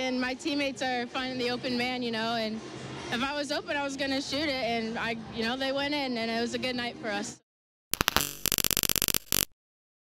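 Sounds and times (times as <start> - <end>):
digital glitch static bursts: 8.0 - 9.5.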